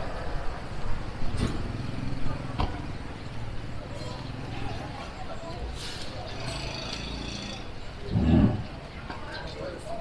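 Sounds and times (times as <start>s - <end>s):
pedestrians' voices: 0.0s - 10.0s
road traffic rumble: 0.0s - 10.0s.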